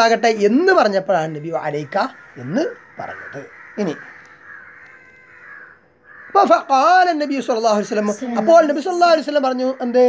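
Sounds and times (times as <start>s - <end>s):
thin steady hum: 0.0s - 9.5s
crow cawing: 0.0s - 10.0s.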